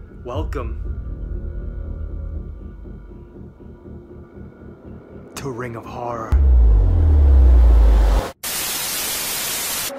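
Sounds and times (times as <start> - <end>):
television static hiss: 8.4 - 9.9.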